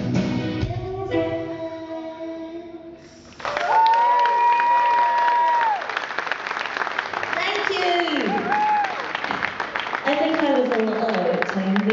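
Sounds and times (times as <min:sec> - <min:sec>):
rock song: 0:00.0 - 0:01.7
audience applauding and cheering: 0:03.3 - 0:11.9.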